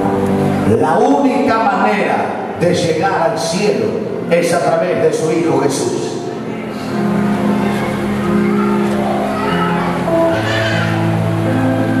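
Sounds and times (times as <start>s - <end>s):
band playing soft chords: 0.0s - 12.0s.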